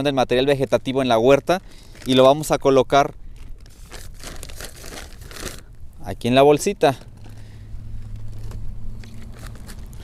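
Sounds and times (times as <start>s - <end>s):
plastic bag crinkling: 0.6s - 5.8s, 6.9s - 10.0s.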